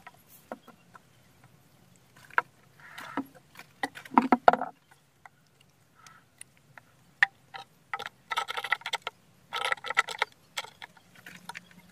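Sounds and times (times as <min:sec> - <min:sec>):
rocks clicking and knocking: 0:00.0 - 0:11.9.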